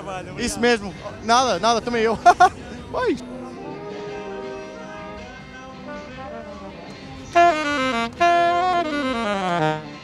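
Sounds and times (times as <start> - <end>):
faint music: 0.0 - 10.0
saxophone playing: 3.3 - 10.0.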